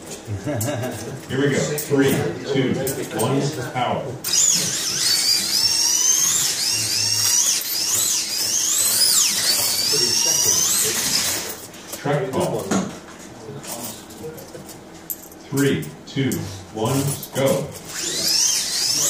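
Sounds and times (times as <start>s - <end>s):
slot car motors whining: 4.2s - 11.7s, 17.8s - 19.0s.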